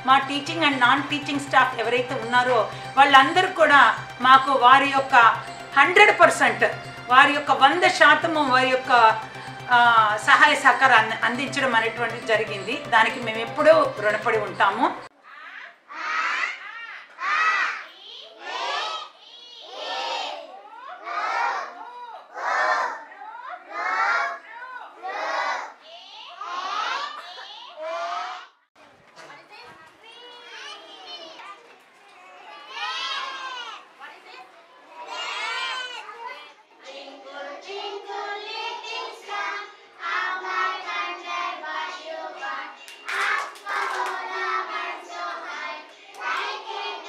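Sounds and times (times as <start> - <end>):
children chanting in unison: 15.9 - 27.2, 34.9 - 47.0.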